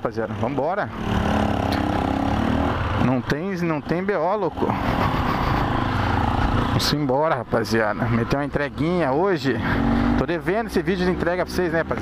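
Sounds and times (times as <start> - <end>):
motorcycle engine low revving: 0.3 - 12.0.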